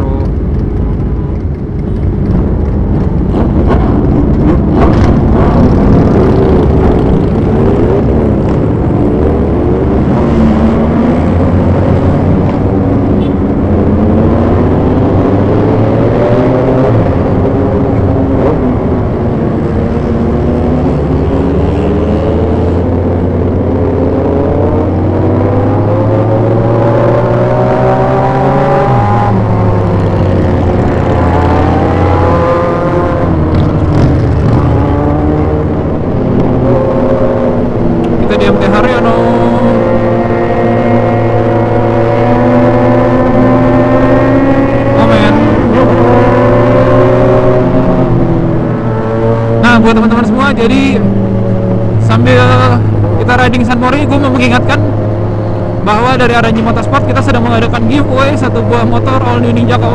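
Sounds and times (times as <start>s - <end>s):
motorcycle engine accelerating: 0.0s - 59.9s
other motorcycle engines: 0.0s - 59.9s.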